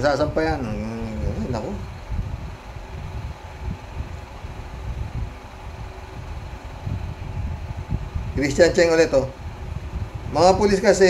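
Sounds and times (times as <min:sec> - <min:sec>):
person talking: 0:00.0 - 0:01.9
faint steady hum: 0:00.0 - 0:11.0
low uneven rumbling: 0:00.0 - 0:11.0.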